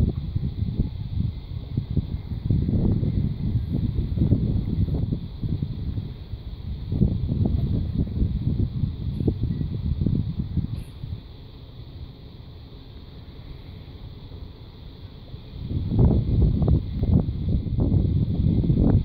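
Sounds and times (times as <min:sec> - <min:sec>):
faint steady hiss: 0:00.0 - 0:19.0
wind buffeting microphone: 0:00.0 - 0:19.0.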